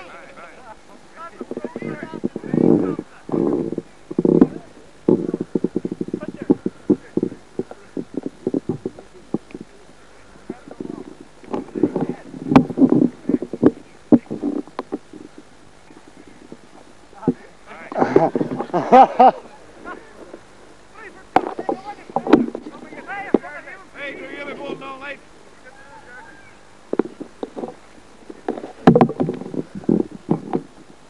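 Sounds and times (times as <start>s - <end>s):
indistinct voices talking: 0.0s - 30.6s
man laughing: 17.9s - 20.0s
sharp clicks and knocks: 21.3s - 23.5s, 26.9s - 30.8s.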